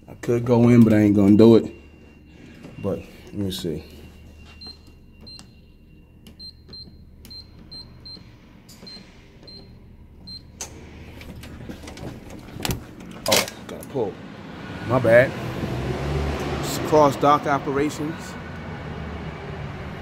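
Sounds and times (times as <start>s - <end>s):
keypad beeps: 0.7s - 10.6s.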